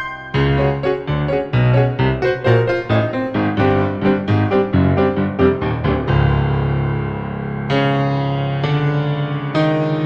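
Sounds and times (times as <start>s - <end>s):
staccato piano with heavy bass: 0.0s - 10.0s.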